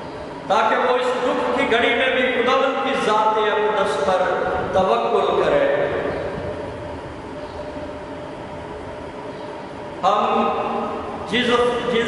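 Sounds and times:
room hum and hiss: 0.0 - 12.0
voice: 0.5 - 6.0, 10.0 - 10.7, 11.3 - 12.0.

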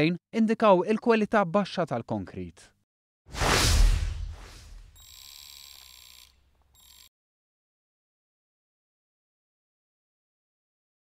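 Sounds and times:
whoosh with deep rumble: 3.3 - 4.9.

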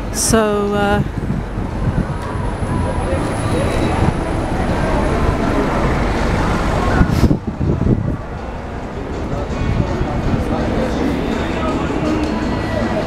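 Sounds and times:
cars driving past: 1.1 - 13.0
tyres on wet road: 1.2 - 12.4.

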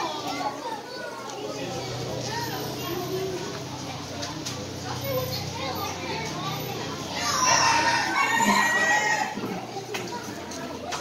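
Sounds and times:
crowd chatter: 0.0 - 11.0
rooster crowing: 7.2 - 9.4.

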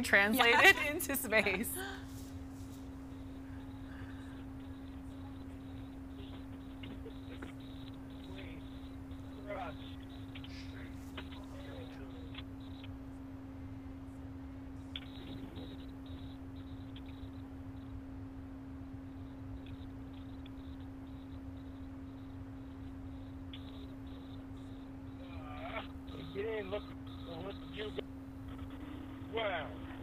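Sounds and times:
faint low rumble: 0.0 - 30.0
steady low hum: 0.0 - 30.0
faint ticks: 19.1 - 29.0.

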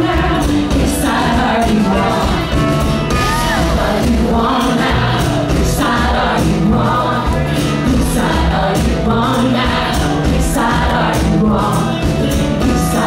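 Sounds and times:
live band with female vocals: 0.0 - 13.0.

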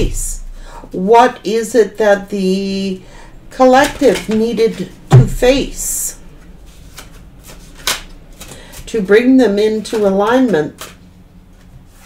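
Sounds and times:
cards shuffling: 6.4 - 8.9, 9.6 - 12.0
cards snapping: 6.7 - 8.9, 10.7 - 11.0.

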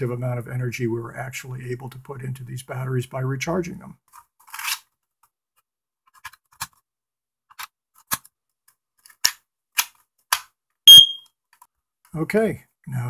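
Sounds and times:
high-pitched alarm beep: 10.9 - 11.2.

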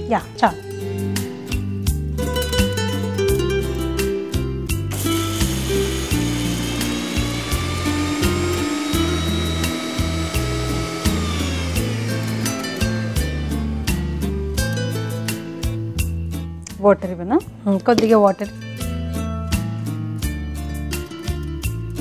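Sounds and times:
background music: 0.0 - 22.0
mixer grinder motor whining: 4.9 - 15.9.

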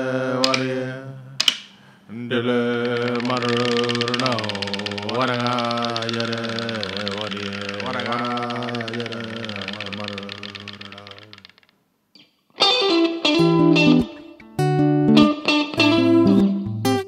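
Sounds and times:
person chanting long held notes: 2.2 - 11.3.

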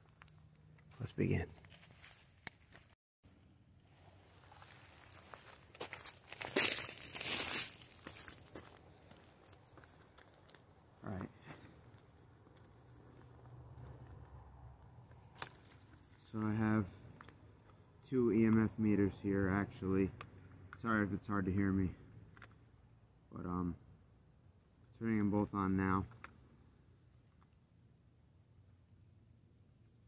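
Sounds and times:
dry leaves and clothing rustling: 1.5 - 2.9, 4.0 - 10.6, 15.1 - 16.2.

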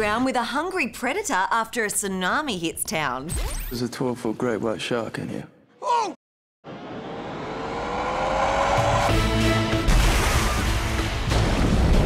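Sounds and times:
trailer music with held chords: 6.6 - 12.0
rising tone: 6.7 - 9.8
loud impact hit: 6.7 - 12.0.

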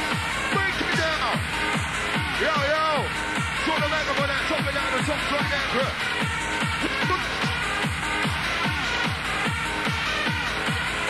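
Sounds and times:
hardstyle dance music: 0.0 - 11.0.

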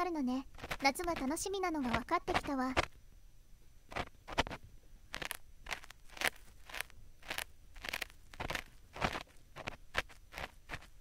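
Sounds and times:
ear pick scraping microphone: 3.9 - 11.0.

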